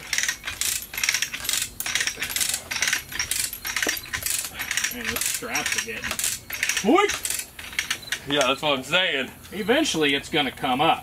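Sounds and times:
ratchet clicks of chain hoist: 0.0 - 8.5.

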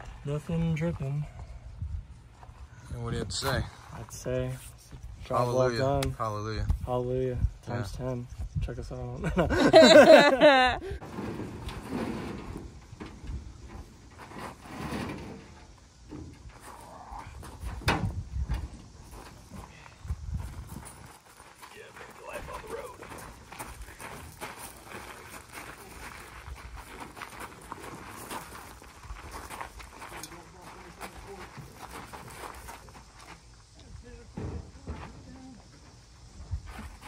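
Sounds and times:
footsteps crunching on gravel: 18.9 - 33.8.

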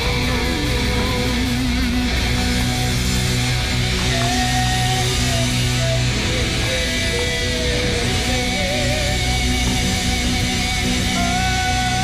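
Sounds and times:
electric guitar: 0.0 - 12.0
rock band playing live: 0.0 - 12.0.

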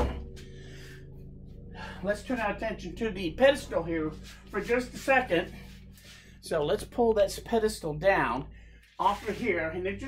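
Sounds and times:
steady low hum: 0.0 - 10.0
steady tones: 0.0 - 10.0.

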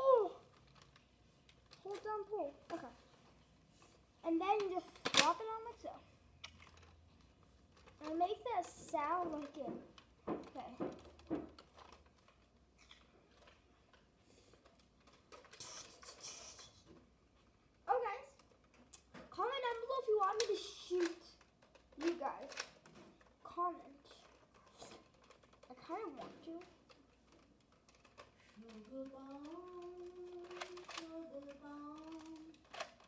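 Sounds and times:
toy blaster plastic clicks: 4.6 - 5.4.

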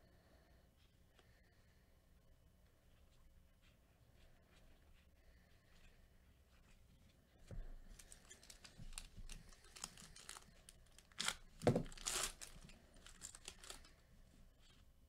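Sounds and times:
foil wrapper tearing and crinkling: 8.2 - 13.9.

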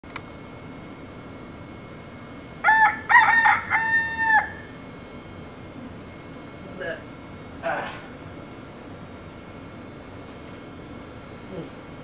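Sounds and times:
rooster crowing: 2.6 - 4.8.

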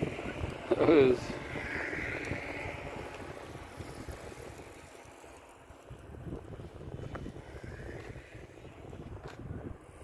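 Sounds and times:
faint hiss of passing bicycles: 0.0 - 10.0
wind buffeting microphone: 0.0 - 10.0.

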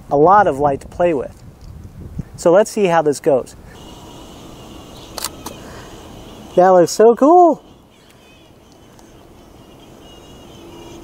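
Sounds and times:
faint outdoor background noise: 0.0 - 11.0
camera shutter clicks: 5.0 - 5.6.

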